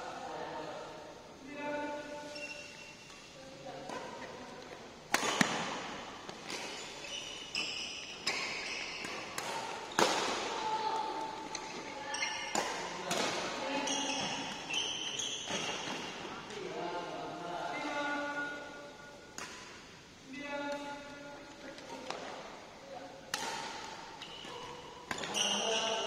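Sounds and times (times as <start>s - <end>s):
rackets striking shuttlecock: 5.1s - 6.8s, 7.9s - 10.6s, 23.3s - 25.6s.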